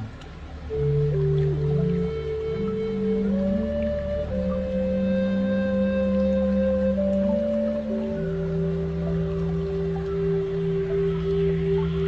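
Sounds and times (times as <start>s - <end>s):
ambient meditation music: 0.0s - 12.0s
steady low drone: 0.0s - 12.0s.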